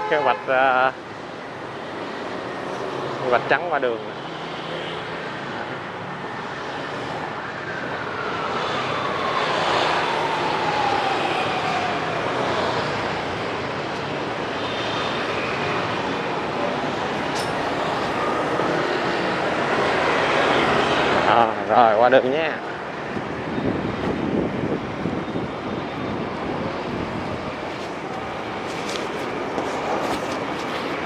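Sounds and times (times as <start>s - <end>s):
busy street traffic: 0.0s - 31.0s
passing vehicle whine: 0.0s - 31.0s.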